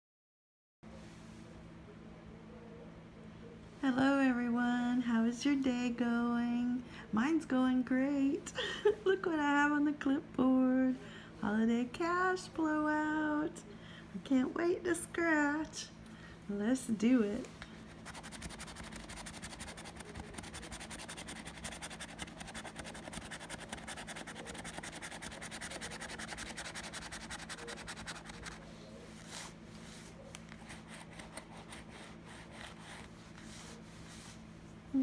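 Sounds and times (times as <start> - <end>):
coin scratching lottery ticket: 18.0 - 28.6.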